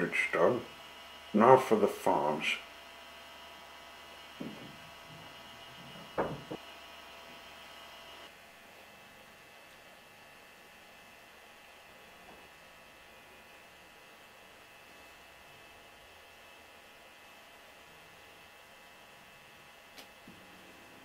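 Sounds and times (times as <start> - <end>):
faint electrical hum: 0.0 - 21.0
soft knocks: 4.4 - 6.6.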